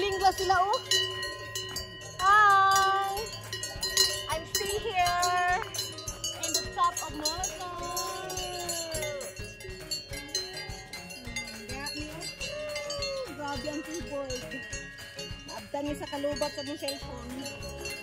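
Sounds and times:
cowbells clanking: 0.0s - 18.0s.

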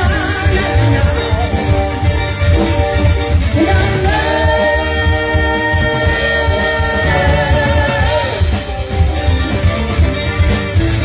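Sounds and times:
live rock band playing: 0.0s - 11.0s
woman singing: 3.6s - 8.6s.

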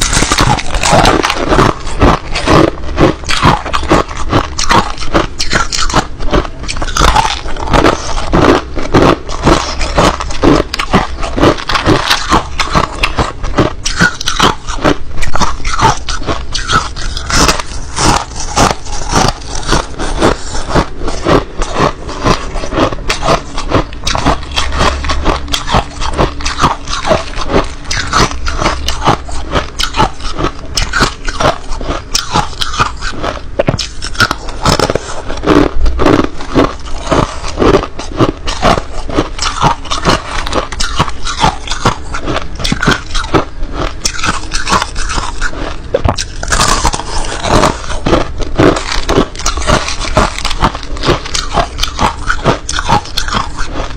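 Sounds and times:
crushed ice being chewed: 0.0s - 53.9s.

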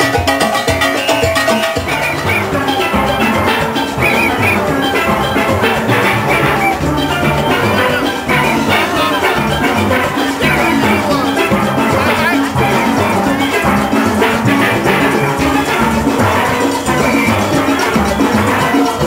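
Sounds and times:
drums and percussion rhythm: 0.0s - 19.0s
steel pans playing melody: 0.0s - 19.0s.

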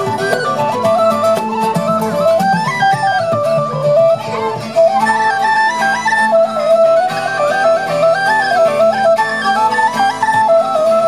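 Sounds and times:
strummed acoustic guitar: 0.0s - 11.0s
tin whistle melody: 0.0s - 11.0s.

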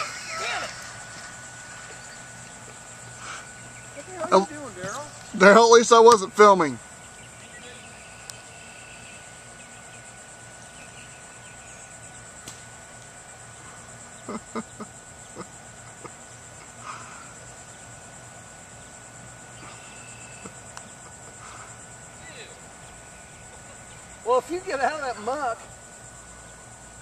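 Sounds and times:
insects buzzing: 0.0s - 27.0s
person laughing: 14.2s - 16.8s.

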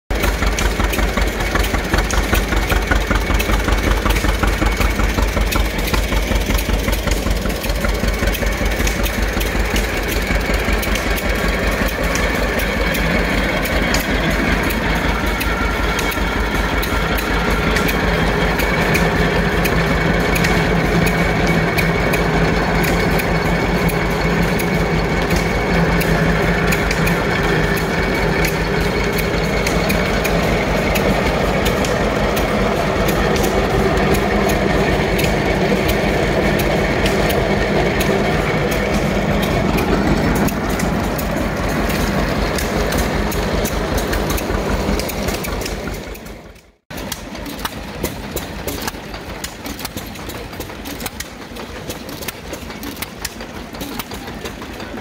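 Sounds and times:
tractor engine running: 0.0s - 55.0s
corn sheller humming: 0.1s - 55.0s.

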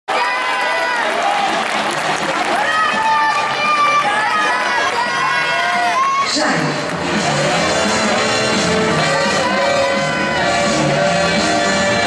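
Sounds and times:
spectators shouting encouragement: 0.1s - 12.0s.

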